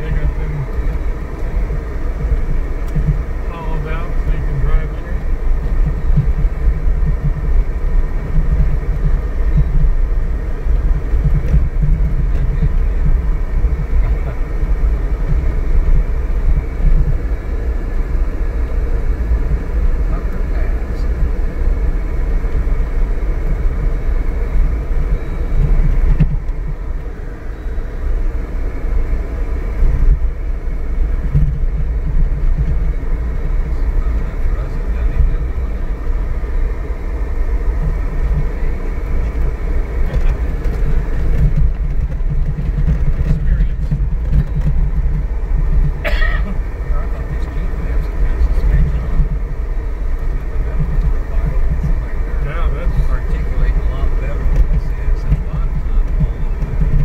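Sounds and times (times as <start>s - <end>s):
off-road vehicle rumble inside cabin: 0.0s - 57.0s.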